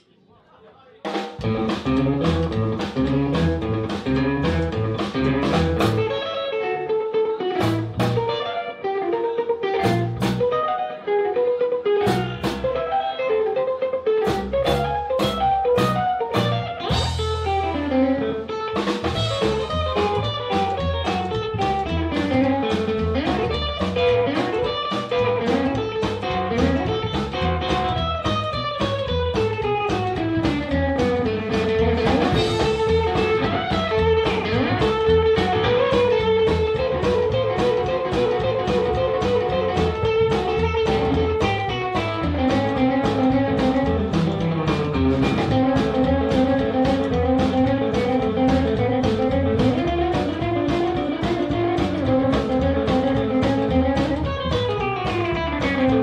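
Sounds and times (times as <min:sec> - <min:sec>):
drum kit: 0:01.0 - 0:10.9, 0:11.8 - 0:56.0
bass: 0:01.1 - 0:56.0
electric guitar lead lines: 0:01.4 - 0:56.0.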